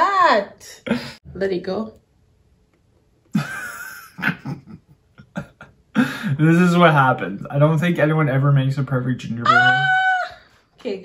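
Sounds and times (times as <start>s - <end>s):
person laughing breathily: 0.9s - 1.2s, 3.4s - 6.5s.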